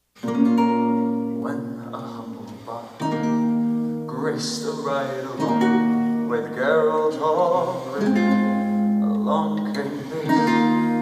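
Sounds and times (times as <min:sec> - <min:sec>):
guitar chords ringing: 0:00.2 - 0:11.0.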